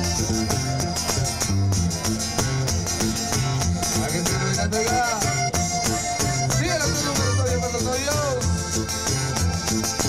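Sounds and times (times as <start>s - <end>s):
button accordion melody: 0.0s - 10.0s
steady bass beat: 0.0s - 10.0s
strummed guitars: 0.0s - 10.0s.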